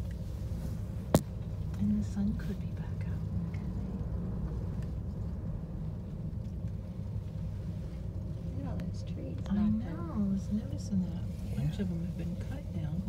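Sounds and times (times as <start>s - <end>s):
low rumble in gondola cabin: 0.0s - 13.0s.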